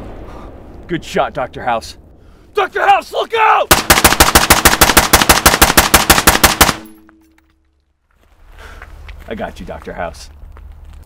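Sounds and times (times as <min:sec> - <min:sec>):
rifle firing rapid burst: 0:03.7 - 0:06.9.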